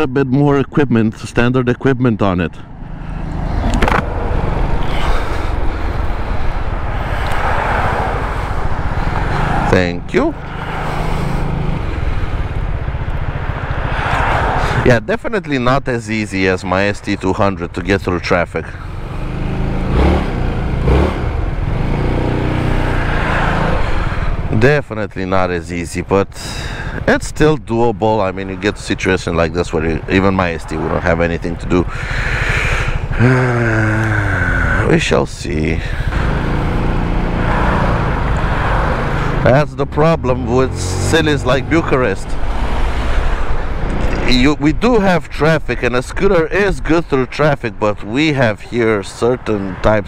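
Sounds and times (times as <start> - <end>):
road and air noise: 0.0 - 50.0
traffic noise: 0.0 - 50.0
scooter engine running: 10.4 - 14.6, 31.4 - 35.0, 35.9 - 39.6.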